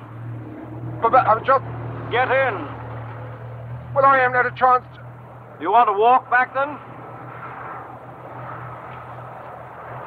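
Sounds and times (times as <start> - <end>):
car engine idling: 0.0 - 7.2.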